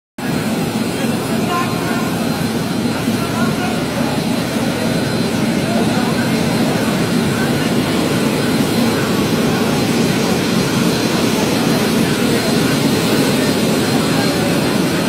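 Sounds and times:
boat engine droning: 0.2 - 15.0
people talking: 0.2 - 15.0.

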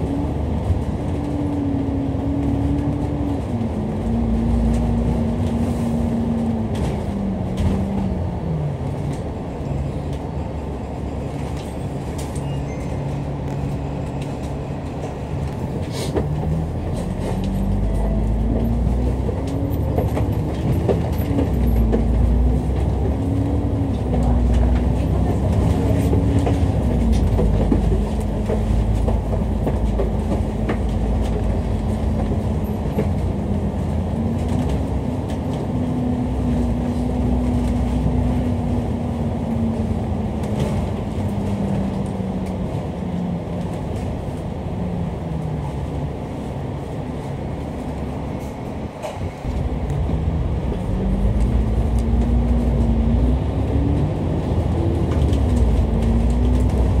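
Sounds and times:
bus engine rumble and whine: 0.0 - 57.0.

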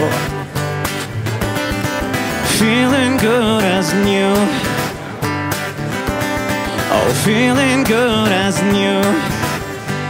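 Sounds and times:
acoustic guitar strumming: 0.0 - 10.0
person singing folk song: 0.0 - 10.0.

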